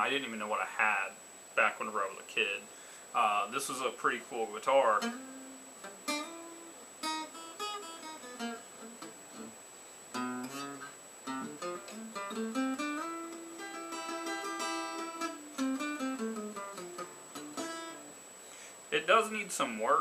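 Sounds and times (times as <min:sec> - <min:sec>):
acoustic guitar picking and strumming: 0:03.8 - 0:18.1.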